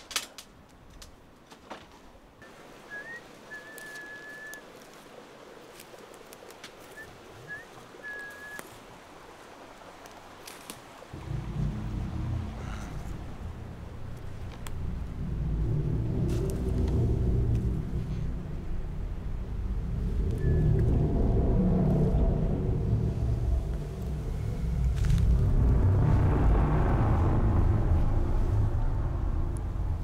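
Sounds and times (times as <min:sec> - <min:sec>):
deep low rumble: 0:11.1 - 0:30.0.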